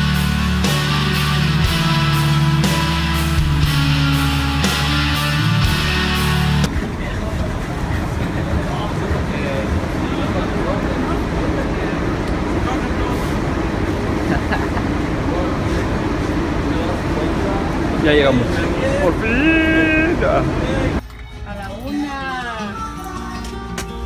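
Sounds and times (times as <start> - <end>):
background music: 0.0 - 6.7, 19.4 - 24.0
indistinct chatter of people: 6.7 - 24.0.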